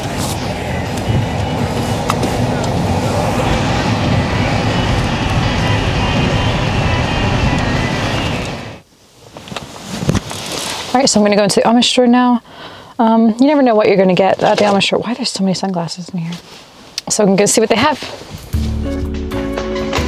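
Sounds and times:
road and engine noise in car: 0:00.0 - 0:12.2.

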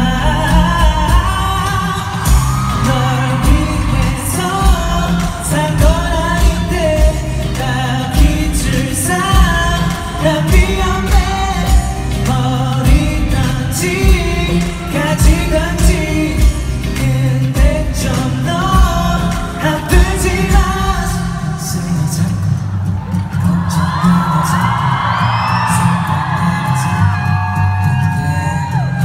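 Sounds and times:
live pop band backing: 0:00.0 - 0:29.0
male singer: 0:00.0 - 0:29.0.

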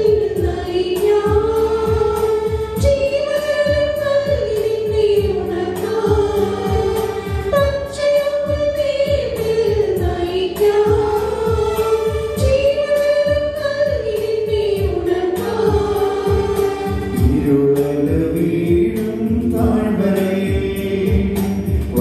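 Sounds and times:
women's choir singing a hymn: 0:00.0 - 0:02.9, 0:03.6 - 0:07.6, 0:14.4 - 0:17.2
low rhythmic accompaniment beat: 0:00.0 - 0:22.0.

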